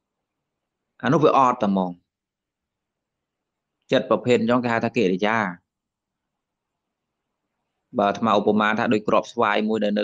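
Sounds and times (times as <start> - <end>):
man speaking: 1.0 - 2.1, 3.9 - 5.7, 8.0 - 10.0.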